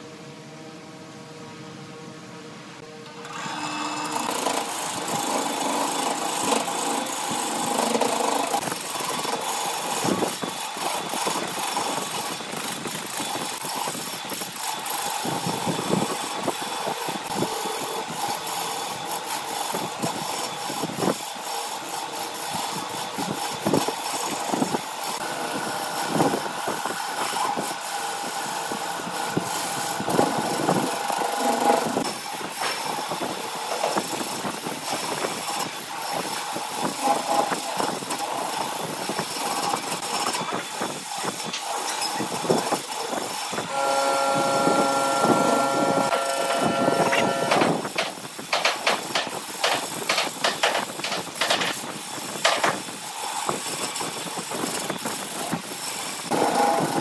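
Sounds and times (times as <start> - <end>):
lathe machine hum: 13.2 - 42.1, 42.8 - 49.9, 56.2 - 57.0
gouge scraping wood: 43.8 - 51.6
tool clicking on wood: 46.0 - 51.8, 52.4 - 52.8.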